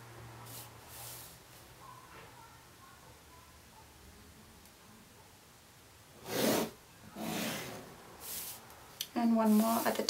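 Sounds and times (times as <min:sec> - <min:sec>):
pencil and ruler rubbing on paper: 0:06.2 - 0:08.6.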